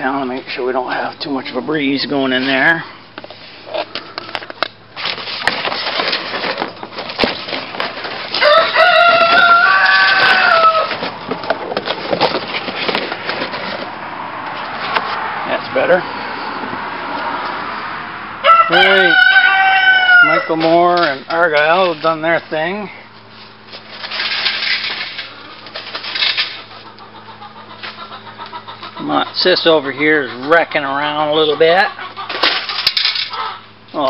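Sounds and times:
rustling and knocking: 4.4s - 14.0s
rooster crowing: 8.3s - 11.0s, 18.4s - 20.6s.

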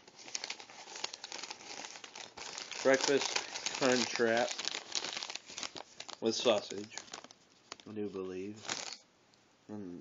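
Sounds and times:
paper wrapper crinkling: 0.0s - 9.0s.

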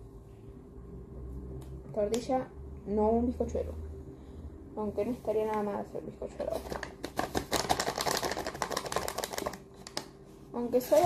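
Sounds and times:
plastic bag crinkling: 6.5s - 10.2s.

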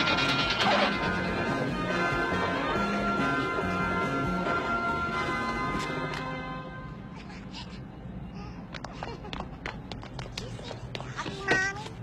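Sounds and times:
high-pitched wavering cry: 0.0s - 1.6s.

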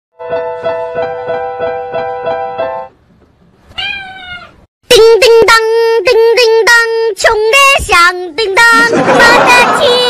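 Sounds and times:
digital piano notes: 0.2s - 3.0s
cat meowing: 3.7s - 4.6s.

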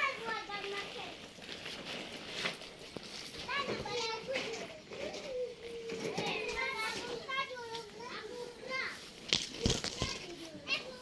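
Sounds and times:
children calling and chattering: 0.0s - 11.0s.

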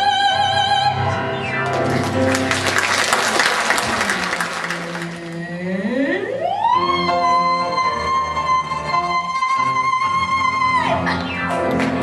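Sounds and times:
musical accompaniment: 0.0s - 12.0s
audience clapping: 1.5s - 5.6s.

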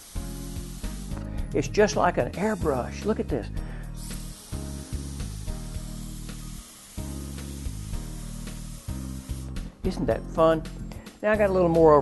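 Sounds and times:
atomizer spraying hiss: 0.0s - 11.3s.

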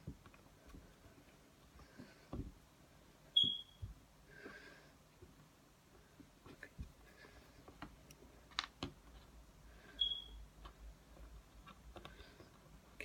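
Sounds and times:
clay clicks and taps on table: 7.6s - 9.3s.

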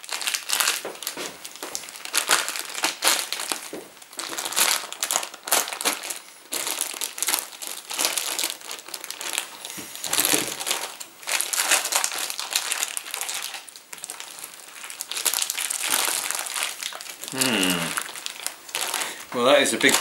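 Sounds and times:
plastic wrapping crinkling: 0.0s - 20.0s.

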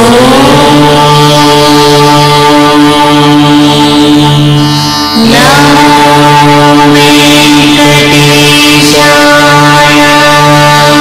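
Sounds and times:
chanting in long held notes: 0.0s - 11.0s.

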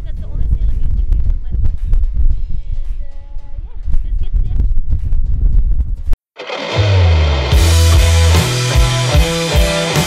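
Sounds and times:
wind buffeting microphone: 0.0s - 6.2s
rock music with electric guitar: 6.4s - 10.0s.

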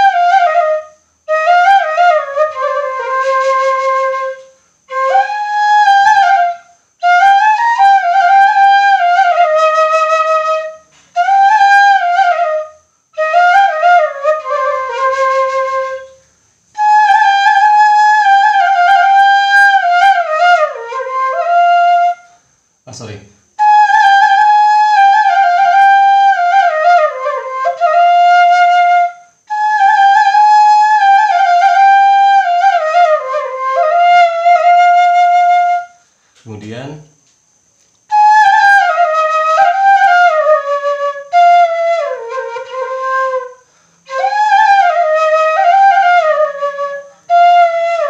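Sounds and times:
bamboo flute melody: 0.0s - 22.4s, 23.6s - 36.0s, 38.1s - 48.0s.

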